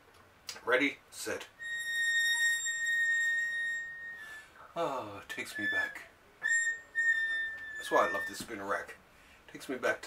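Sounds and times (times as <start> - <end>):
spinner rack squealing: 1.6 - 4.5, 5.3 - 8.6.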